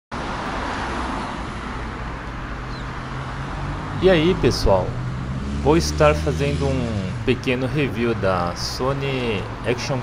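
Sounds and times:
road traffic with low rumble: 0:00.1 - 0:10.0.

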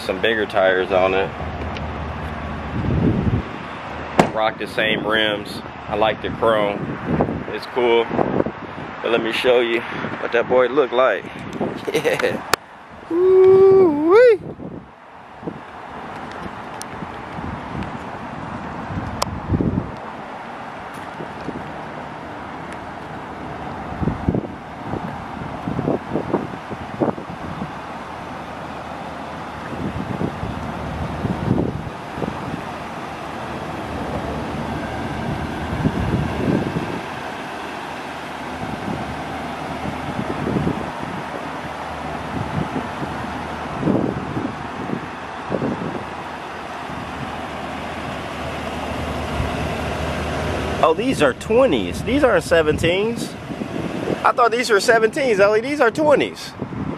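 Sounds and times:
road traffic: 0:00.0 - 0:56.9
wind buffeting microphone: 0:00.0 - 0:56.9.

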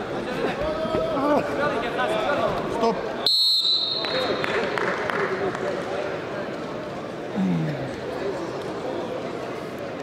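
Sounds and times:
voices in a hall: 0:00.0 - 0:10.0
referee's whistle blowing: 0:03.2 - 0:04.3.

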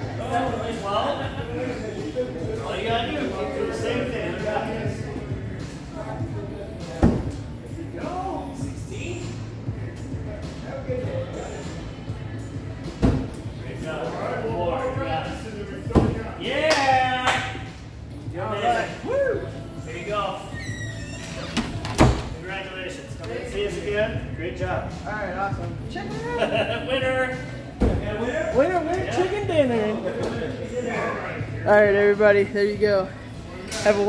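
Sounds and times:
background music: 0:00.0 - 0:34.0.

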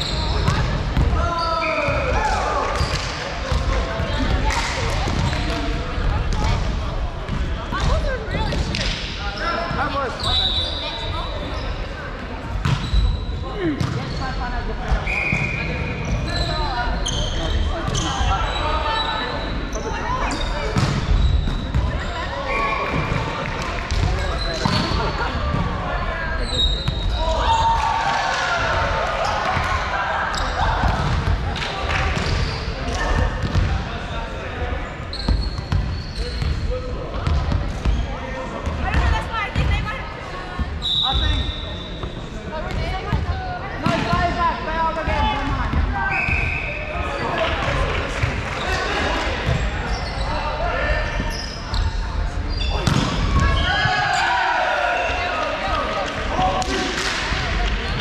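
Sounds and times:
indistinct chatter of players: 0:00.0 - 0:58.0
volleyballs hit and bouncing: 0:01.8 - 0:09.9, 0:20.6 - 0:22.0, 0:22.8 - 0:25.8, 0:30.6 - 0:33.9, 0:42.7 - 0:44.4, 0:52.7 - 0:54.2, 0:55.2 - 0:58.0
shoes squeaking on court: 0:15.0 - 0:23.4, 0:35.0 - 0:36.6, 0:48.6 - 0:54.3.

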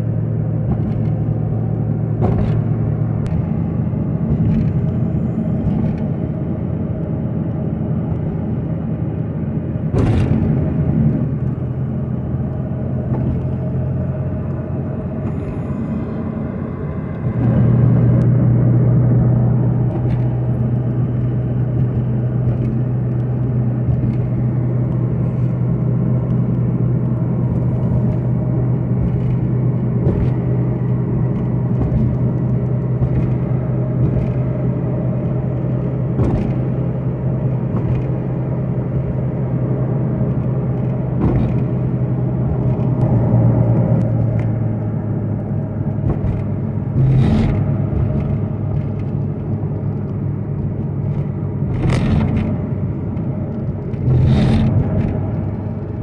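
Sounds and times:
car engine and road drone: 0:00.0 - 0:56.0.

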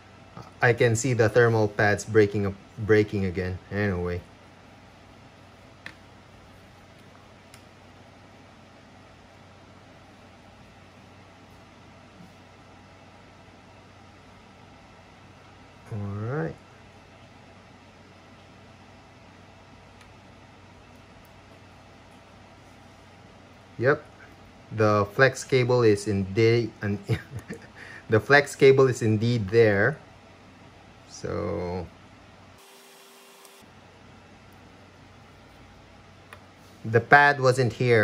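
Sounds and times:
faint hiss with low hum: 0:00.0 - 0:38.0.

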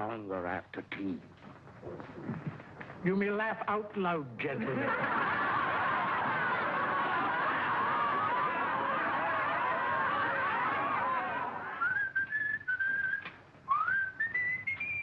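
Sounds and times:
boys laughing loudly: 0:04.6 - 0:11.8
person whistling a tune: 0:11.8 - 0:15.0.

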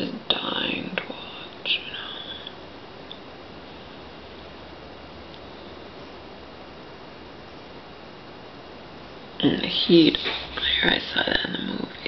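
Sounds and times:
woman whispering: 0:00.3 - 0:02.6, 0:09.4 - 0:12.0.

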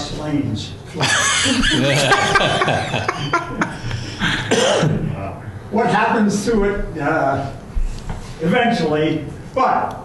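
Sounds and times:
people talking: 0:00.0 - 0:07.6, 0:08.4 - 0:10.0
people laughing: 0:00.9 - 0:04.5.

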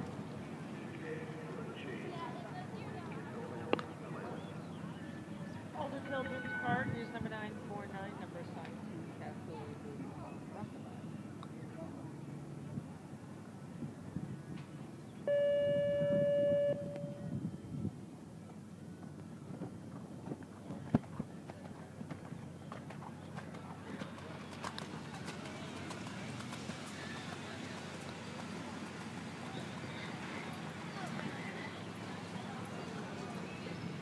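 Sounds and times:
faint voices talking: 0:00.0 - 0:15.3, 0:16.5 - 0:34.0
electronic signal horn tone: 0:15.3 - 0:17.3.

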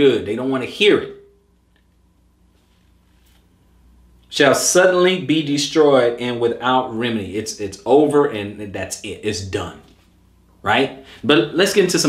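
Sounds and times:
low steady hum: 0:00.0 - 0:12.0
person speaking: 0:04.2 - 0:12.0.

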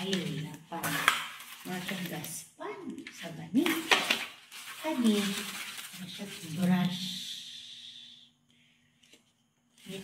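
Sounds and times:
plastic packaging crinkling: 0:00.0 - 0:02.4, 0:03.0 - 0:07.1.

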